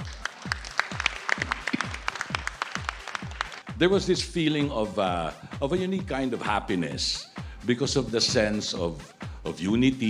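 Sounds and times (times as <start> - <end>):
applause: 0.0 - 3.7
electronic beat music: 0.0 - 10.0.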